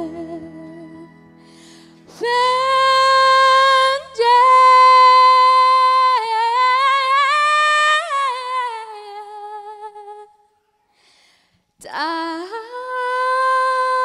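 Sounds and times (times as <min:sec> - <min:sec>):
woman singing: 0:00.0 - 0:01.3, 0:02.0 - 0:10.6, 0:11.8 - 0:14.0.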